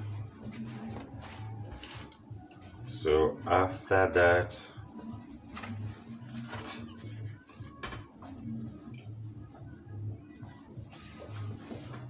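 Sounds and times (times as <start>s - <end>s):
fabric rustling: 0.0s - 2.8s, 4.8s - 12.0s.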